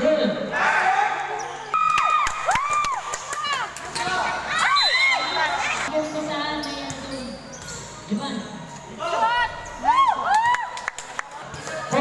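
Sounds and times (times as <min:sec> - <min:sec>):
sneakers squeaking on floor: 0:01.3 - 0:01.8, 0:03.9 - 0:09.9.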